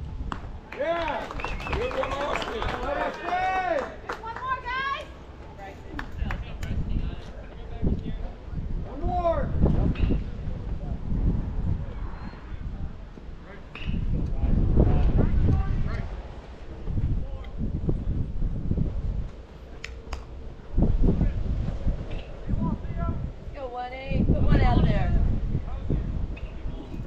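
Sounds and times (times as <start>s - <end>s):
wind rumbling on microphone: 0.0s - 27.0s.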